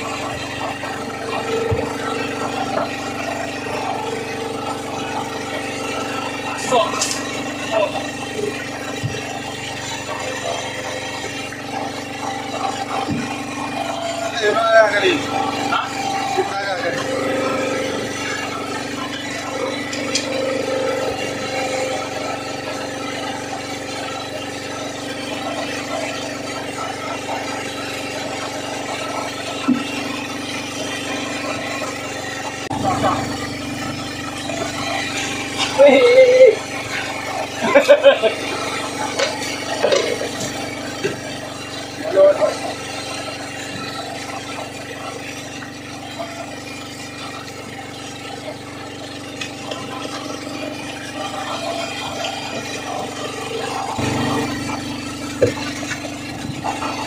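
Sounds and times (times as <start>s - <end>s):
boat engine humming: 0.0s - 57.0s
voices: 0.5s - 22.2s, 32.7s - 40.6s, 41.9s - 43.0s.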